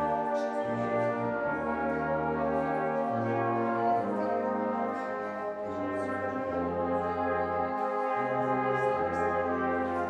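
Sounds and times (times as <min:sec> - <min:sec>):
brass band playing held chords: 0:00.0 - 0:10.0.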